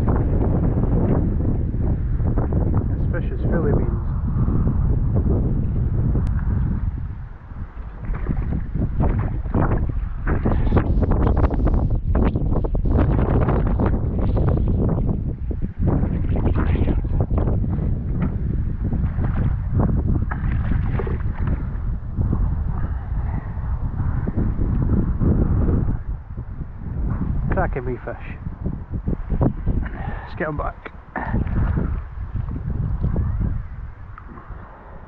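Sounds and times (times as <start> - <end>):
strong wind buffeting microphone: 0.0 - 35.0.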